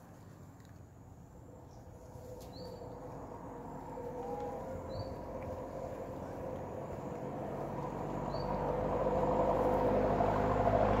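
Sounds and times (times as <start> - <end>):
motor vehicle rumbling: 1.0 - 11.0.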